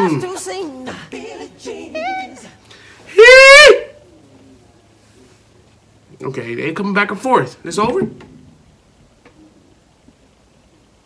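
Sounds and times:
man speaking: 0:06.1 - 0:08.2.

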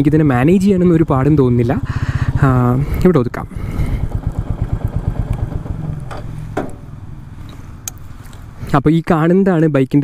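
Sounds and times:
motorcycle engine running: 0:00.0 - 0:08.6.

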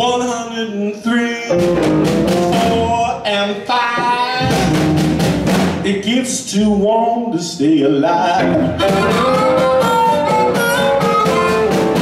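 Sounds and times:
live blues band playing: 0:00.0 - 0:06.8, 0:07.9 - 0:12.0
drum kit hits: 0:01.5 - 0:03.2, 0:03.9 - 0:06.2, 0:08.4 - 0:12.0
saxophone: 0:08.4 - 0:12.0.

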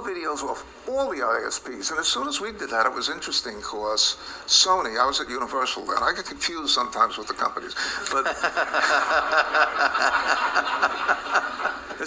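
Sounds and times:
rhythmic chuckling laughter: 0:08.0 - 0:12.0.

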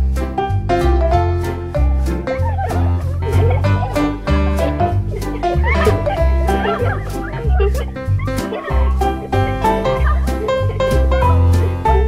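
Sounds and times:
upbeat music with bass beat: 0:00.0 - 0:12.0
squeaky gliding sounds: 0:02.4 - 0:12.0.

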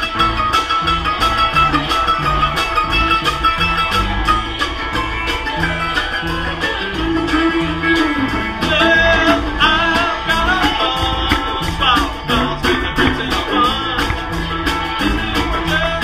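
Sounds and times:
guitar: 0:00.0 - 0:16.0
steady bass beat: 0:00.0 - 0:16.0
wavering bending melody line: 0:00.0 - 0:16.0.

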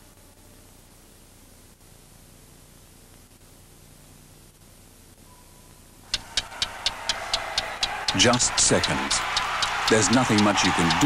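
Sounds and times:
rapid even ticking: 0:06.1 - 0:11.0.

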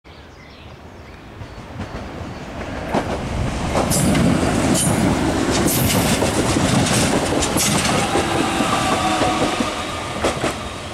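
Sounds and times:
train passing close by: 0:00.8 - 0:10.9
steady train whine: 0:01.3 - 0:10.9
wheels clicking over rail joints: 0:02.6 - 0:10.7.

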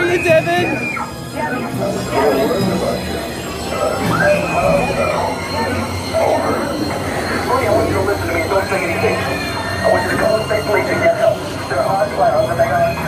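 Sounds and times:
high squealing tones: 0:00.0 - 0:13.0
voices: 0:00.0 - 0:13.0.

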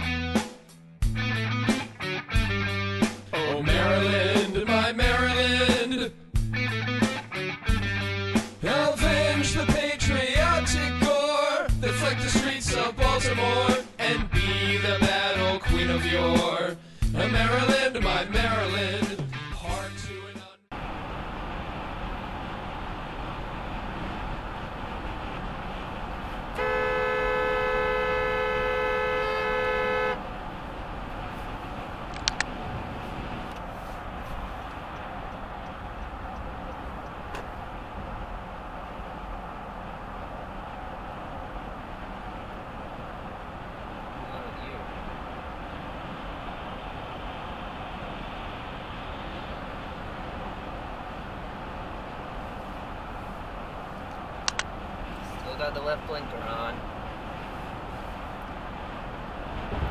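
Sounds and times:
road and tyre noise: 0:00.0 - 0:59.9
car horn blast: 0:26.5 - 0:30.2.

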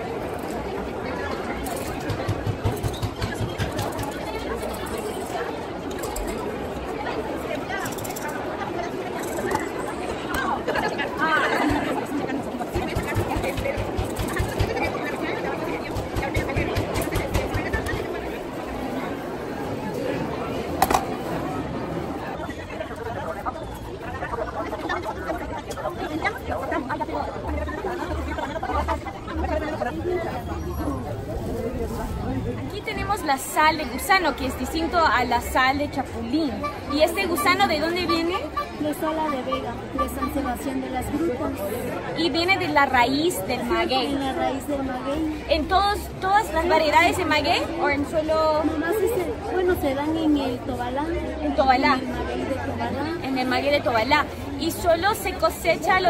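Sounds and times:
voices chattering: 0:00.0 - 0:56.0.

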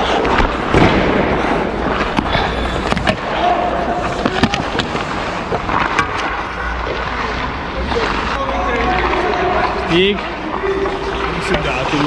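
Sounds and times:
stick and puck clacks: 0:00.1 - 0:00.7, 0:01.8 - 0:03.4, 0:04.0 - 0:12.0
skates scraping on ice: 0:01.3 - 0:12.0.

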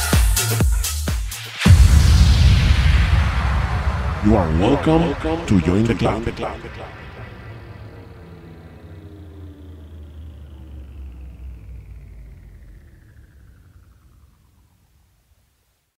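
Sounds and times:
falling whoosh: 0:01.6 - 0:14.6
low bass drone: 0:01.6 - 0:15.3.

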